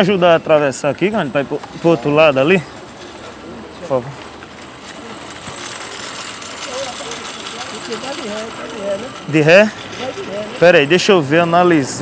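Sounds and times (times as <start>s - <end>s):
street background noise: 0.0s - 12.0s.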